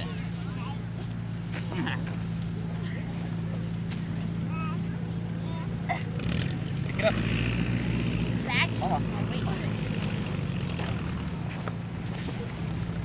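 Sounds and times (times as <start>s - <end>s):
faint voices: 0.0s - 7.6s.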